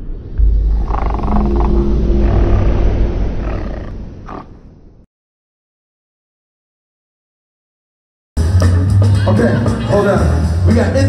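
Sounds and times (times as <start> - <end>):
deep rumble with low notes: 0.0 - 5.1.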